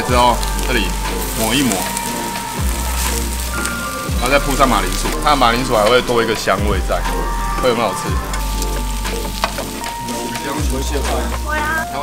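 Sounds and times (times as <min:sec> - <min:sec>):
background music: 0:00.0 - 0:12.0
meat sizzling on grill plate: 0:00.0 - 0:12.0.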